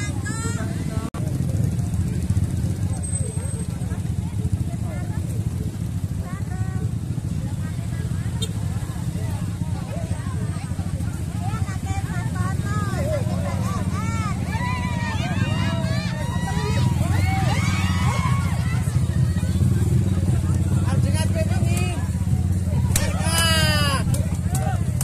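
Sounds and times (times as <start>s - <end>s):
crowd chattering and calling: 0.0s - 25.0s
motorcycle engine idling: 0.0s - 25.0s.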